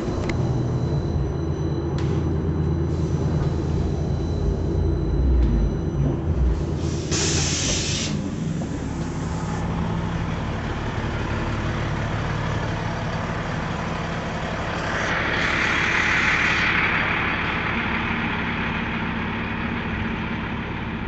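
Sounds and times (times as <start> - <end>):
bus engine idling: 0.0 - 21.0
loud hiss: 6.9 - 8.2.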